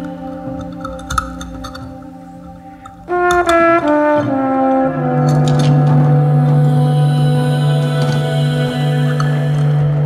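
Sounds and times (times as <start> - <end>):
jazz trombone: 3.0 - 8.8.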